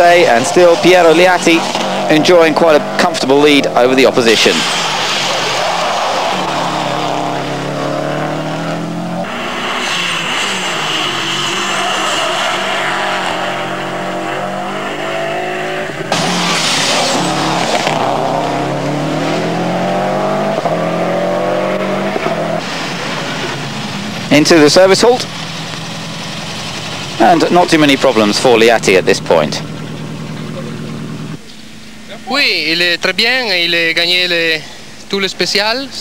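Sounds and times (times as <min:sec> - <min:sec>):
rush of noise: 0:00.0 - 0:25.3
rally car engines accelerating: 0:00.0 - 0:31.4.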